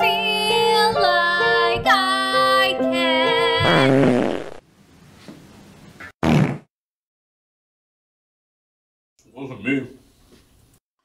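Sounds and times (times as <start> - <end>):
person singing: 0.0 - 3.8
fart: 3.6 - 4.6, 6.0 - 6.7.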